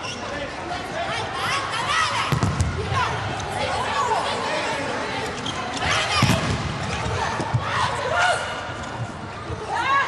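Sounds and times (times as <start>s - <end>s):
voices and crowd noise: 0.0s - 10.0s
volleyball struck with dull thud: 2.3s - 2.8s
shoes squeaking on floor: 5.2s - 6.2s.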